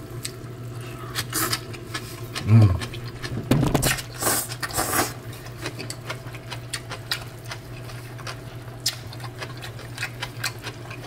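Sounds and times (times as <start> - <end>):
steady low hum: 0.0 - 11.0
chewing and mouth noises: 0.2 - 11.0.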